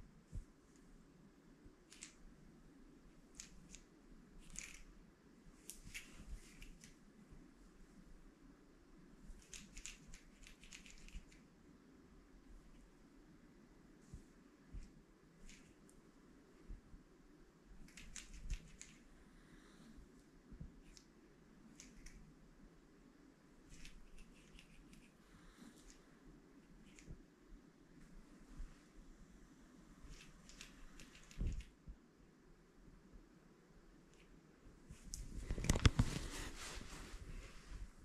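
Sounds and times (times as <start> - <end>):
faint clicks and rustles: 1.7 - 8.3, 9.1 - 11.6, 14.0 - 17.0, 17.7 - 22.4, 23.6 - 29.1, 29.9 - 32.0, 34.0 - 38.0.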